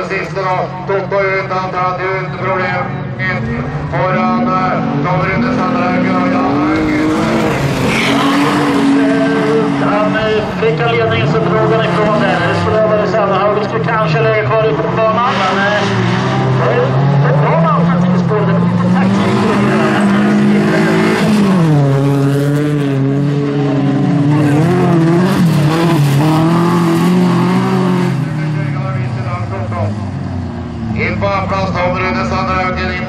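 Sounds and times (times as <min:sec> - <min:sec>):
race car engines revving: 0:00.0 - 0:33.0.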